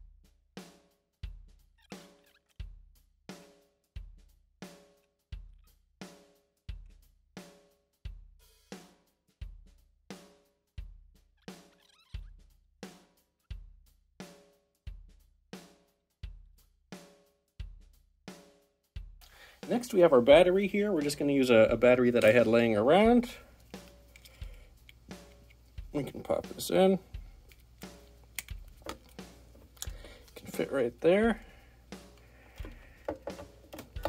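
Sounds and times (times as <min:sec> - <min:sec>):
sparse drum-kit beat: 0:00.0 - 0:01.6, 0:02.6 - 0:11.2, 0:12.4 - 0:34.0.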